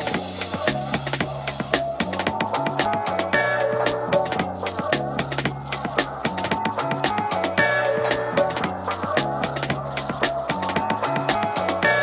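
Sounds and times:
deep house music: 0:00.0 - 0:12.0.

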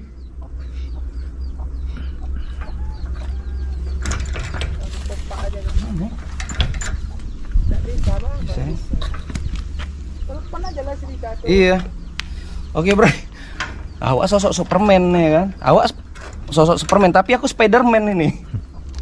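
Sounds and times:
steady low rumble: 0:00.0 - 0:19.0
metal clicks and rattles: 0:03.9 - 0:05.0, 0:06.2 - 0:07.3.

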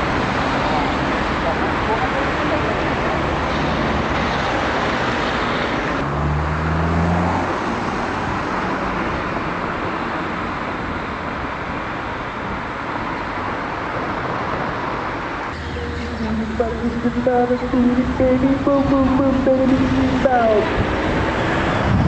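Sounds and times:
distant road traffic: 0:00.0 - 0:22.0.

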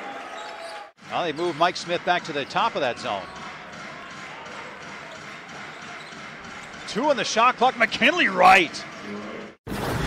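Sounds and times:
murmur of arena crowd: 0:00.0 - 0:09.6.

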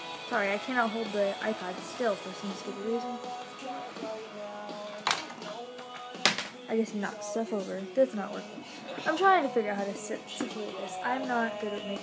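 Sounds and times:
music with singing: 0:00.0 - 0:12.0.

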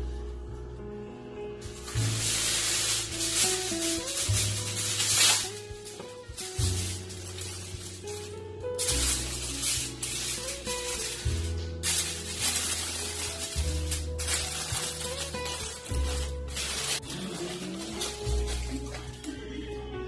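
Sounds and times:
background music with bass line: 0:00.0 - 0:20.0
aluminium foil crinkling: 0:01.6 - 0:20.0.

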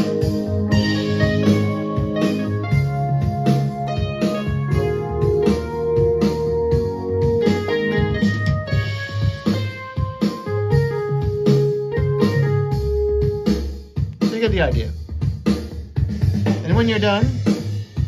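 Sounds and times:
backing track beat: 0:00.0 - 0:18.0
keyboard chords and held notes: 0:00.0 - 0:18.0.

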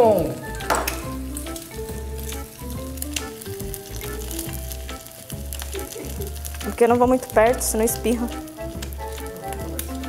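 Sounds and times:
egg sizzling in a pan: 0:00.0 - 0:10.0.

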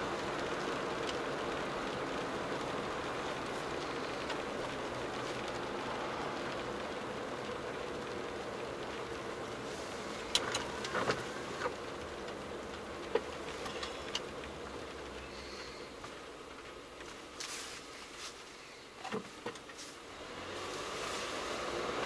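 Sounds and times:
tyres hissing on wet road: 0:00.0 - 0:22.0
windscreen wiper clicks and squeaks: 0:10.0 - 0:15.2, 0:19.0 - 0:20.0.

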